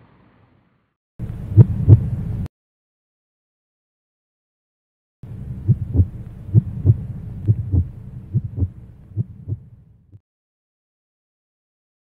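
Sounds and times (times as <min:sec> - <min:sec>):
heartbeat thumps: 0:01.5 - 0:02.1, 0:05.6 - 0:09.8.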